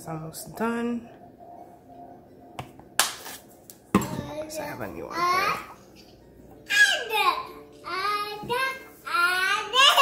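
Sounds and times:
bottle set down on counter: 3.9 - 4.3.

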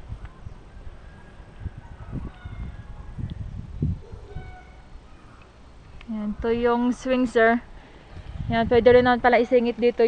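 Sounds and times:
faint high-pitched calls: 4.1 - 5.4.

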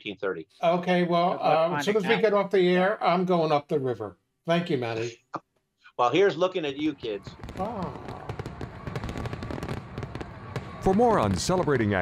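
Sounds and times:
fireworks crackling and popping: 7.2 - 12.0.

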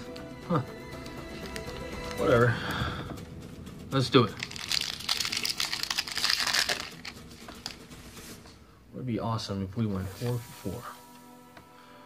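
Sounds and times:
foil wrapper crinkling: 4.4 - 8.0
pack crackling as handled: 4.4 - 8.0.

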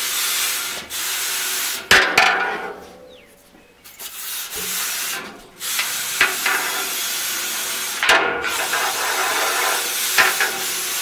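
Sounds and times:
cleaning rod scraping inside tubes: 3.9 - 11.0.

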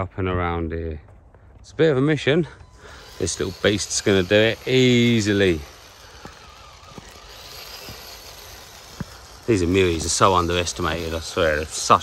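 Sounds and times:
electric toy car motor whine: 2.6 - 12.0.

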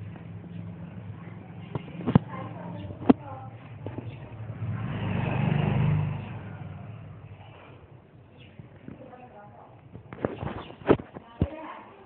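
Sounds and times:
vehicle engine passing: 0.0 - 9.4.

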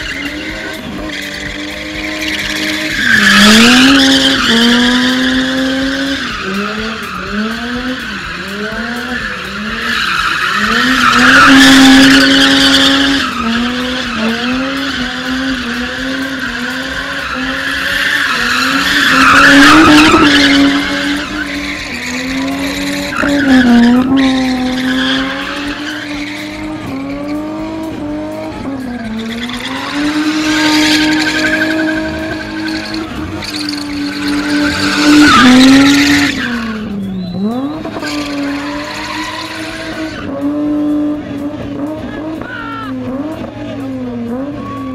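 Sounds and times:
tyres squealing: 0.0 - 27.6, 28.5 - 40.2
car engine revving high: 0.0 - 44.9.

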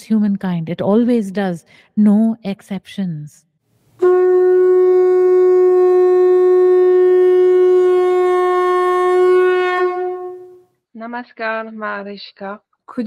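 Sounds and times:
horn-like wind instrument note: 4.0 - 10.7.

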